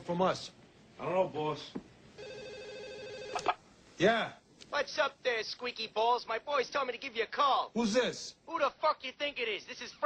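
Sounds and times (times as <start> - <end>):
telephone ringing: 2.2 - 3.6.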